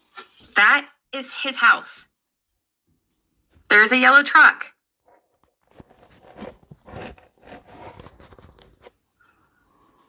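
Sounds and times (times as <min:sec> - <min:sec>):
rustling and crackling: 0:05.0 - 0:09.0.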